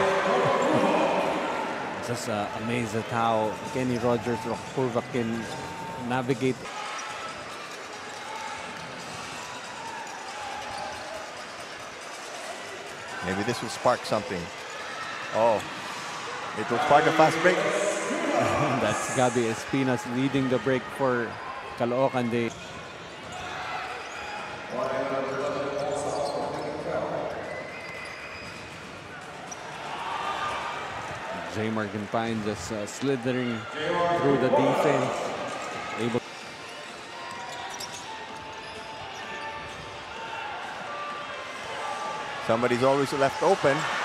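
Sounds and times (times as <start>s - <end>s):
arena crowd noise: 0.0s - 44.0s.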